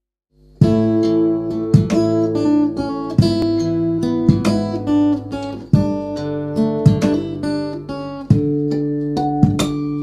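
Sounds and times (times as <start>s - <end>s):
acoustic guitar strumming: 0.4s - 10.0s.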